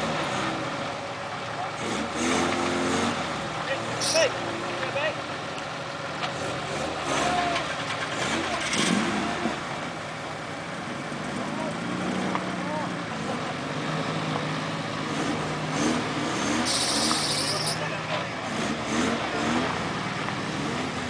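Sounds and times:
buggy engine running at low revs: 0:00.0 - 0:21.0.

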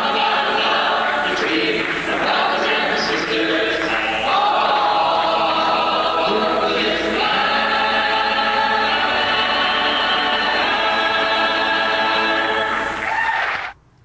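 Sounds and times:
folk group singing in harmony: 0:00.0 - 0:13.1.

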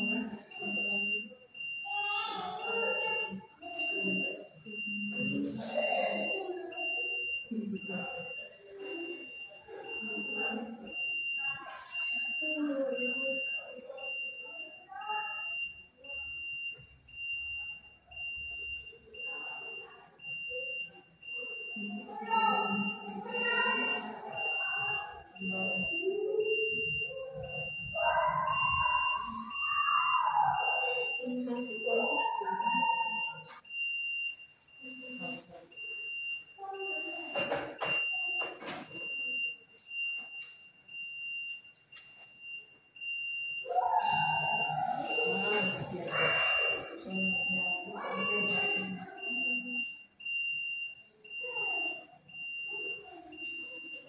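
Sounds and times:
voices: 0:00.0 - 0:54.0.

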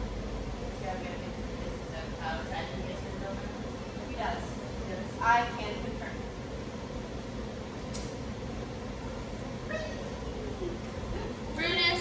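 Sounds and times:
room low hum: 0:00.0 - 0:12.0.

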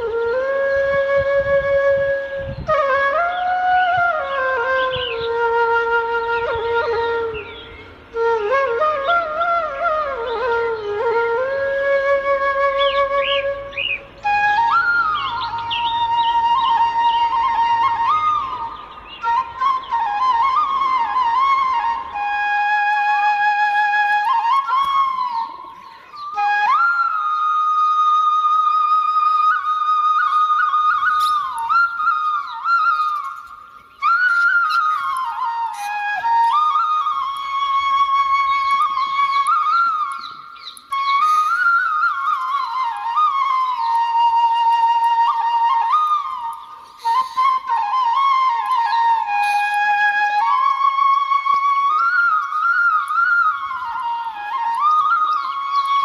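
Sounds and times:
flute playing slow melody: 0:00.0 - 0:56.0.

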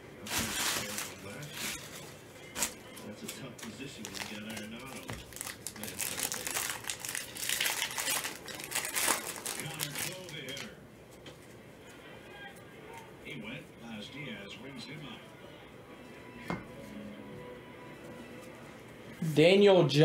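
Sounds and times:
plastic wrapper crinkling and tearing: 0:00.3 - 0:10.7.

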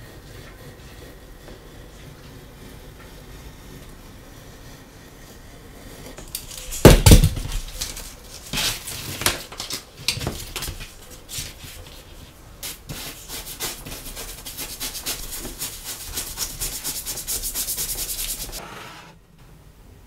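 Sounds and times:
toothbrush scrubbing leather: 0:12.6 - 0:18.6.

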